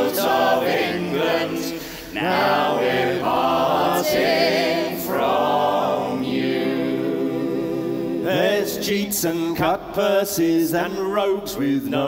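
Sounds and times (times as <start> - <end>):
folk group singing in harmony: 0.0 - 12.0.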